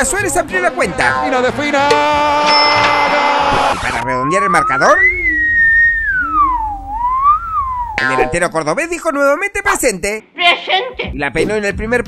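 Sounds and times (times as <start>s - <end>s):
man whistling sliding note: 4.0s - 8.0s.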